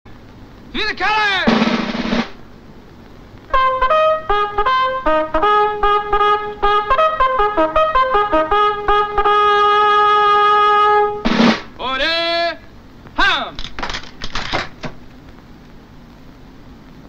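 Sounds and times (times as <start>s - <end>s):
bugle call: 3.5s - 11.3s.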